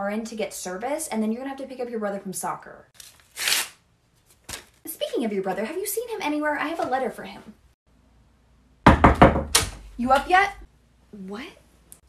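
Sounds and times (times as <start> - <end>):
loud knocks on a door: 8.9 - 9.8.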